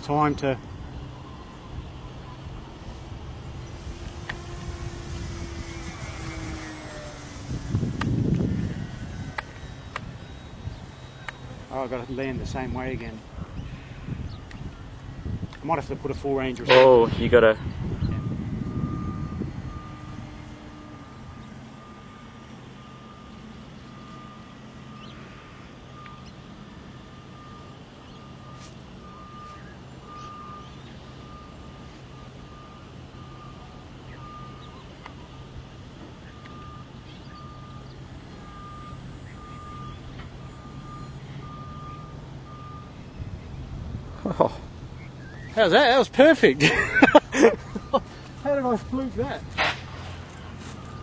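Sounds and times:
low steady hum: 0:00.0 - 0:51.0
electronic beeper tone: 0:01.1 - 0:13.2, 0:16.4 - 0:35.5, 0:36.2 - 0:43.2, 0:47.6 - 0:51.0.

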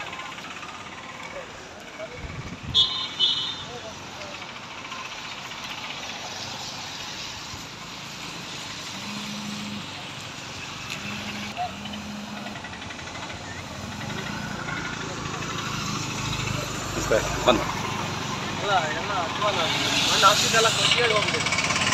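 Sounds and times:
highway traffic: 0:00.0 - 0:21.9
high-pitched car horn toots: 0:02.7 - 0:03.8.

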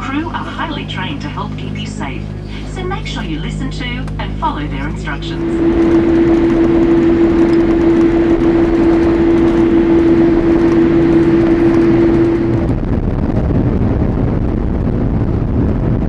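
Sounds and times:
steady hum-like tone: 0:00.0 - 0:13.3
aircraft cabin rumble: 0:00.0 - 0:16.0.

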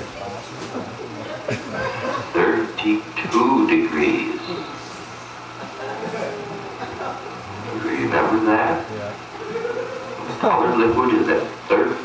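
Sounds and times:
steady low hum: 0:00.0 - 0:12.0
indistinct voices: 0:01.0 - 0:12.0.

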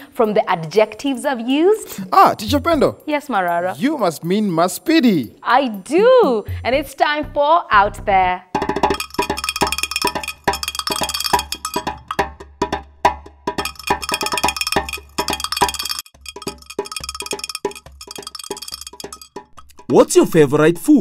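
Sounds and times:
struck ringing pitched notes: 0:08.9 - 0:12.2, 0:13.6 - 0:19.5.

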